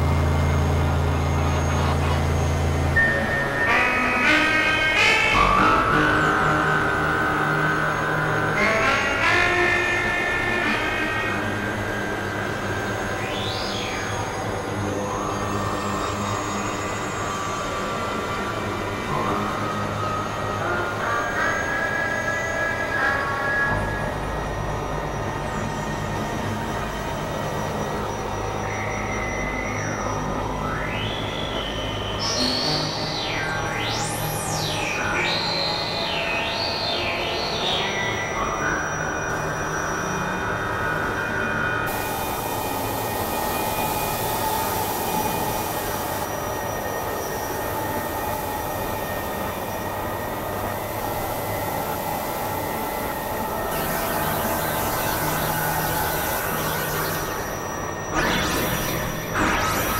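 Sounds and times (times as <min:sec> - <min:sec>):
experimental synthesizer music: 0:29.8 - 0:39.9, 0:41.8 - 0:59.9.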